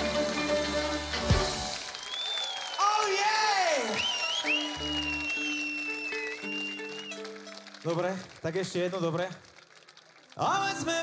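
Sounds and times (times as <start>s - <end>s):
crowd applause: 0.0s - 11.0s.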